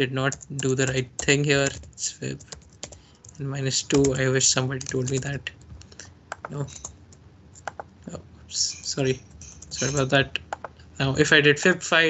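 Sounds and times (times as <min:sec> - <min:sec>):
person speaking: 0:00.0 - 0:02.6, 0:03.3 - 0:07.0, 0:07.6 - 0:12.0
keyboard keystroke clicks: 0:02.5 - 0:04.2, 0:04.8 - 0:06.9, 0:07.6 - 0:07.9.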